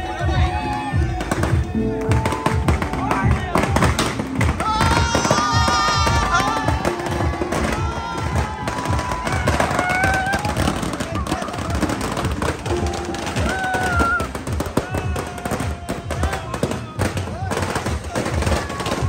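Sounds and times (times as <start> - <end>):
crowd voices: 0.0 - 19.0
rapid drumming: 0.2 - 19.0.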